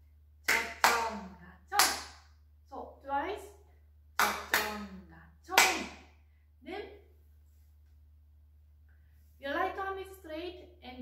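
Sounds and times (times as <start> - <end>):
sharp hand claps: 0.5 - 2.3, 4.2 - 4.9, 5.5 - 6.0.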